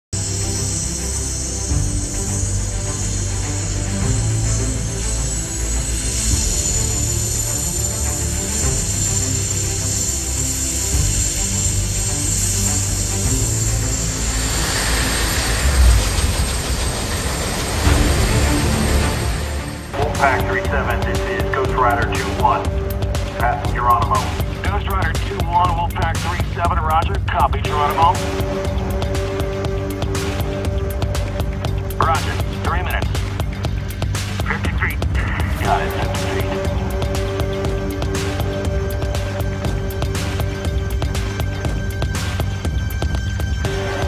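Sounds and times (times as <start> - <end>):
background music: 0.0 - 44.0
helicopter turbine whine: 0.2 - 44.0
broad rushing noise: 11.7 - 25.9.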